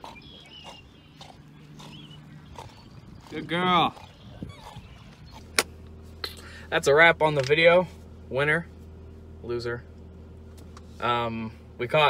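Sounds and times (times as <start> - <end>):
dog growling low: 0.0 - 5.6.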